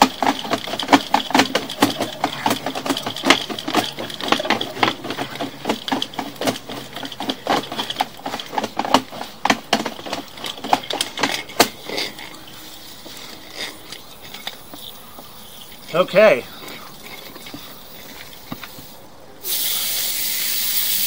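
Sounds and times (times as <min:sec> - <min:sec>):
cable clattering and rattling: 0:00.0 - 0:18.8
faint steady hum: 0:00.0 - 0:21.0.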